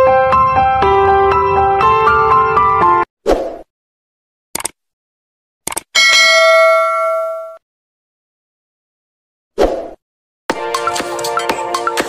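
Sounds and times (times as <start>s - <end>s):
bright bell ding: 6.0s - 7.6s.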